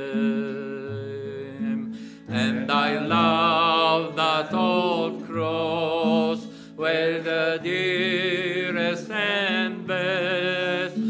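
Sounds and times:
acoustic guitar: 0:00.0 - 0:11.0
man singing a hymn: 0:00.0 - 0:11.0.

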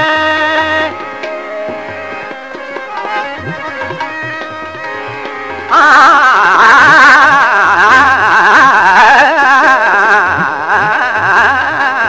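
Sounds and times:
man singing held vowel with oscillations: 0:05.7 - 0:12.0.

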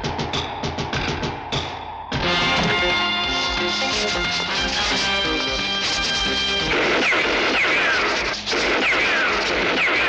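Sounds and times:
background music with held notes: 0:02.2 - 0:07.0.

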